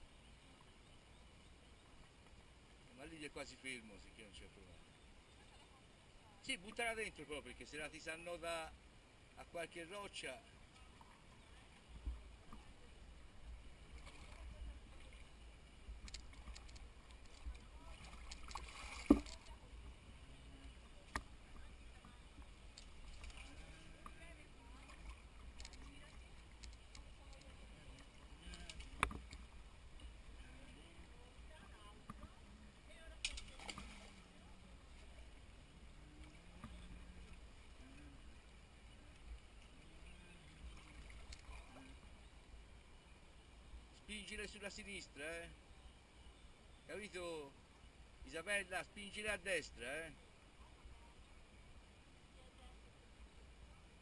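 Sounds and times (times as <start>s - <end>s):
river running over stones: 0.0s - 54.0s
splashes of people wading: 10.4s - 42.8s.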